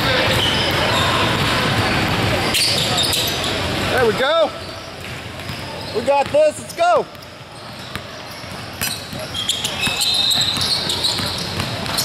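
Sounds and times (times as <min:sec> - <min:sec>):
basketball dribbled on hardwood: 0:07.8 - 0:12.0.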